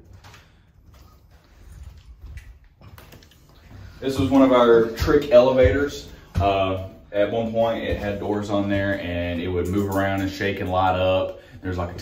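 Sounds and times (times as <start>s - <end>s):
faint footsteps: 0.0s - 10.1s.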